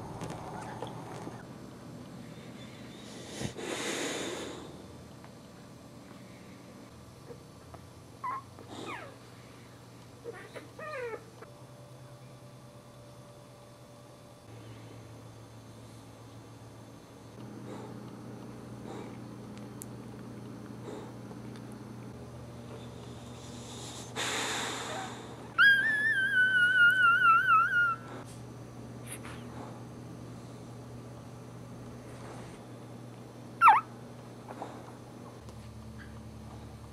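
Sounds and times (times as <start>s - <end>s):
breathy exhale: 2.5s - 4.8s, 23.2s - 25.5s
puppies mewing cries: 8.2s - 9.2s, 25.0s - 28.2s, 33.6s - 34.0s.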